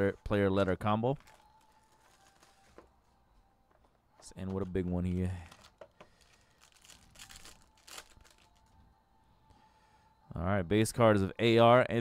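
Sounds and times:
foil wrapper crinkling: 0:01.2 - 0:02.8, 0:05.4 - 0:08.8.

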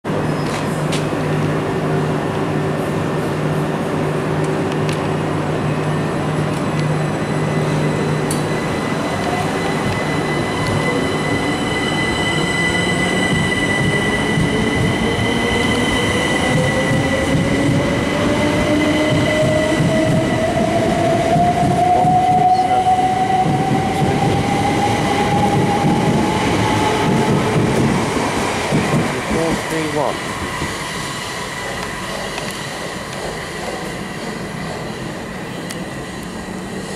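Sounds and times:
electric train hum: 0:00.1 - 0:36.9.

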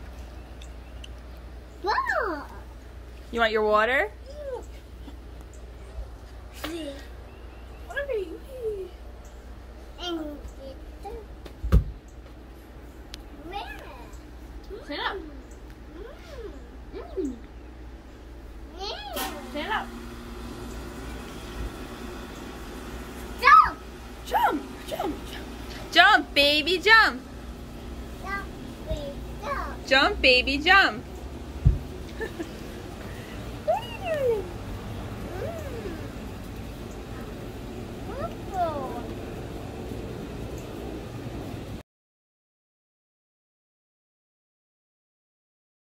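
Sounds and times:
steady low hum: 0:00.0 - 0:41.8.

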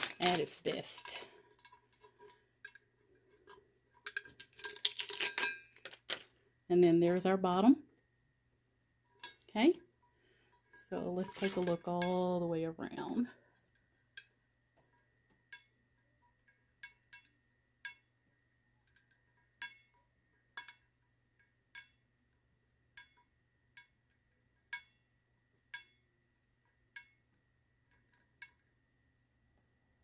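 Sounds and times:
fingernails clinking on metal tumbler: 0:03.4 - 0:06.2.

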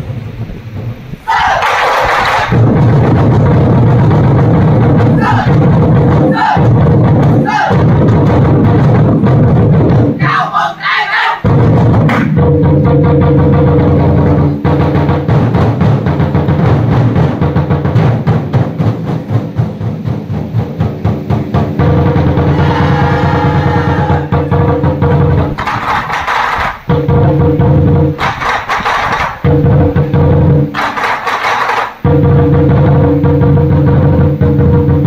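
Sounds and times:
lion dance drums playing: 0:00.0 - 0:35.0.

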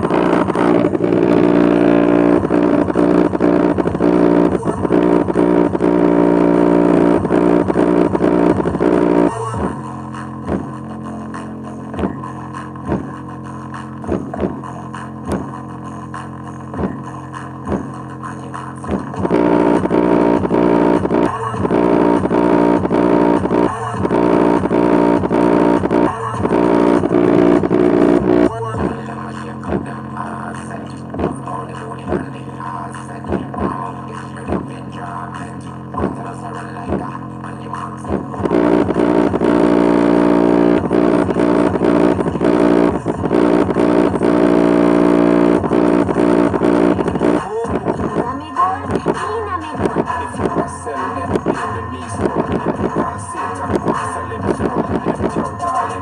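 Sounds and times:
heavy beat music through speaker: 0:00.0 - 0:56.0.

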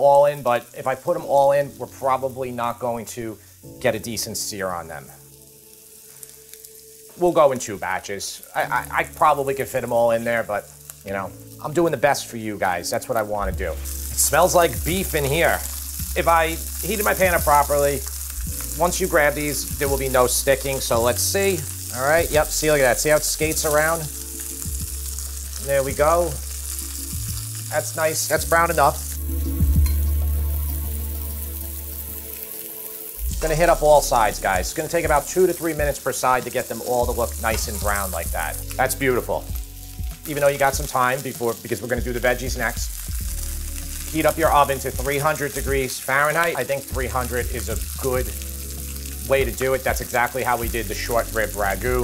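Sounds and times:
background music low notes: 0:00.0 - 0:52.0
meat sizzling in a pan: 0:00.0 - 0:52.0.

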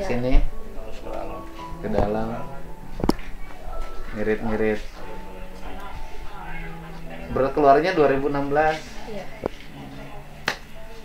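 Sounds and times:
quiet conversational speech: 0:00.0 - 0:11.0.

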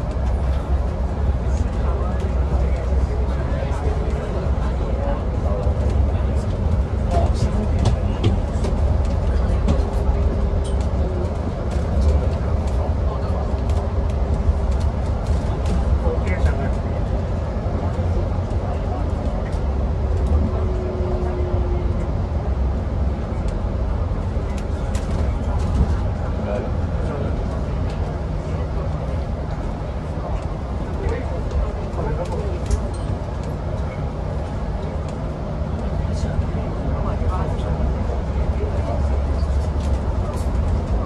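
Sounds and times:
low road rumble: 0:00.0 - 0:41.0.

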